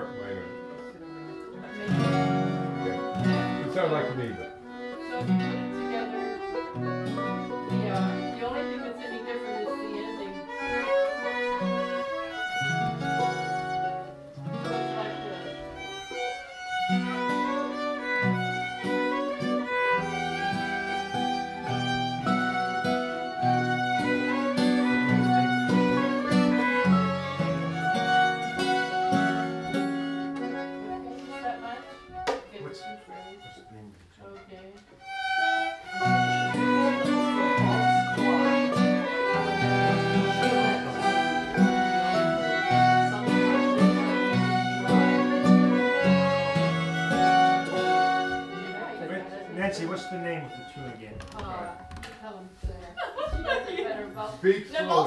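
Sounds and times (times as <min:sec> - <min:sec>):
strummed guitar: 0:00.0 - 0:33.5, 0:35.0 - 0:51.8
fiddle playing waltz melody: 0:00.0 - 0:51.9.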